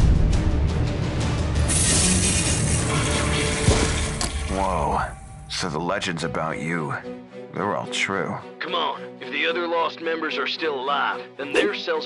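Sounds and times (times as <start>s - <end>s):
background music: 0.0s - 12.0s
toilet flushing: 1.8s - 4.6s.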